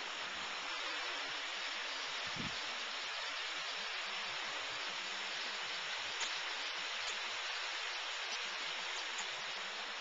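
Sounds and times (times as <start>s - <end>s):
water rushing down waterfall: 0.0s - 10.0s.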